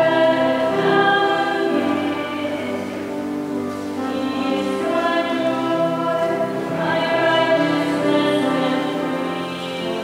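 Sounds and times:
choir singing a hymn: 0.0s - 10.0s.

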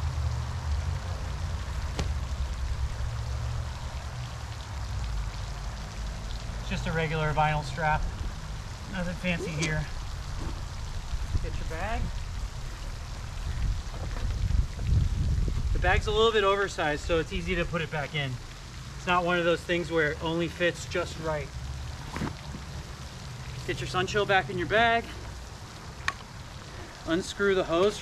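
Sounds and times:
fountain spray splashing: 0.0s - 28.0s
wind buffeting microphone: 7.6s - 16.4s.

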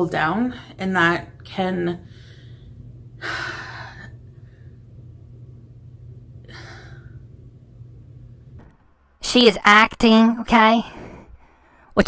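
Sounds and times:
steady low hum: 0.0s - 12.0s
woman breathing in: 2.0s - 4.8s, 10.9s - 11.9s.

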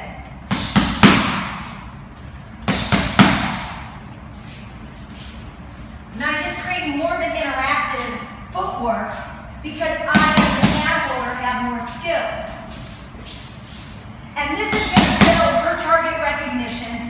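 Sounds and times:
boxing gloves hitting mitts: 0.4s - 1.8s, 2.6s - 4.0s, 10.0s - 11.1s, 14.6s - 15.8s.

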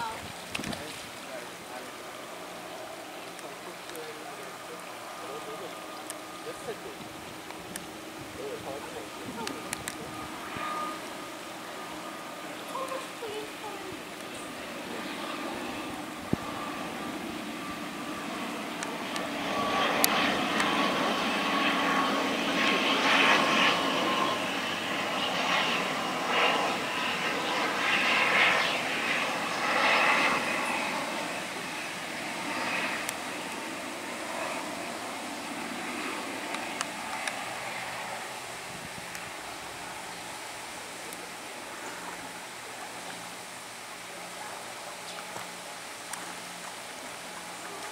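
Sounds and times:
turboprop airliner passing overhead: 0.0s - 47.9s.

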